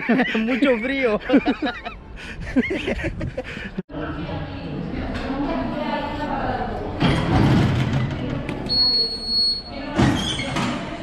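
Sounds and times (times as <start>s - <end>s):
ticket barrier beep: 8.7s - 9.8s.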